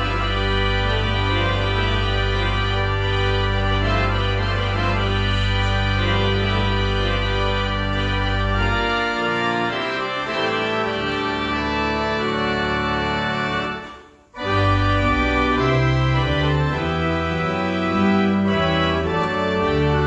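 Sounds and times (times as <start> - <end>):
church organ chords: 0.0 - 20.0
deep organ pedal bass: 0.0 - 20.0.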